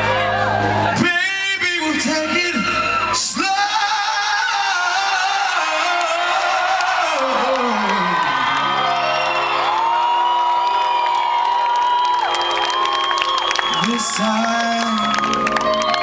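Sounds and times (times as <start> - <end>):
audience whooping and cheering: 0.0 - 16.0
man singing: 0.8 - 8.7, 13.7 - 15.4.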